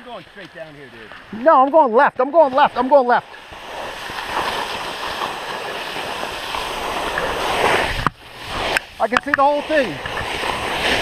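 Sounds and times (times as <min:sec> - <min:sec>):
skis hissing on snow: 0:02.4 - 0:11.0
wind rushing past microphone: 0:03.2 - 0:11.0.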